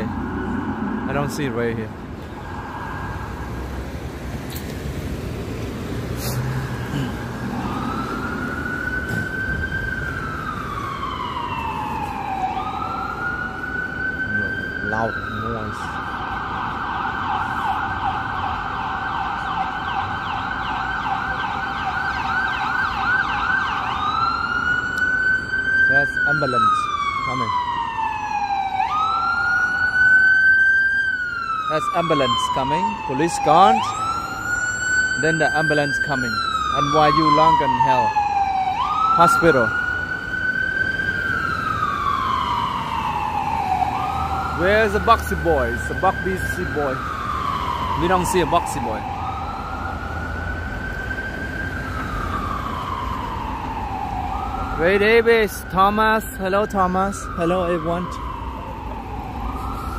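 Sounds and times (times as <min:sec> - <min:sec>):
ambulance siren: 0:00.0 - 0:59.9
city traffic noise: 0:00.0 - 0:59.9.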